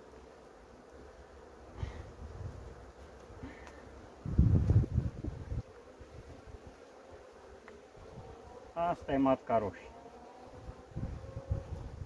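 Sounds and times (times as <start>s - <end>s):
bees humming: 0.0s - 12.0s.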